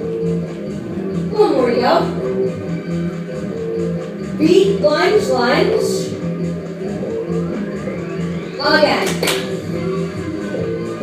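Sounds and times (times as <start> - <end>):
workout music with guitar: 0.0 - 11.0.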